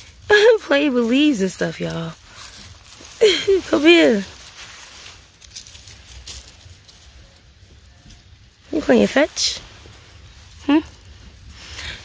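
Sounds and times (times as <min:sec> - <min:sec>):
dry leaves and grass rustling: 0:00.0 - 0:12.0
low steady rumble: 0:00.0 - 0:12.0.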